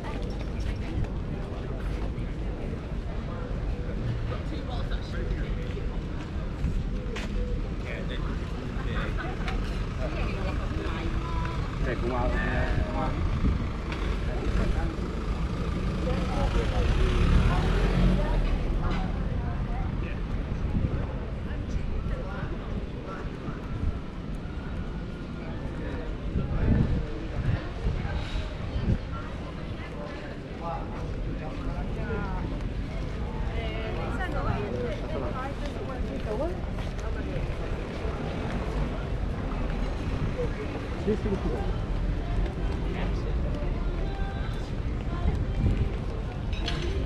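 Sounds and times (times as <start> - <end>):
passersby talking indistinctly: 0.0 - 47.0
wind rumble on microphone: 12.6 - 13.9, 19.1 - 29.6, 44.4 - 47.0.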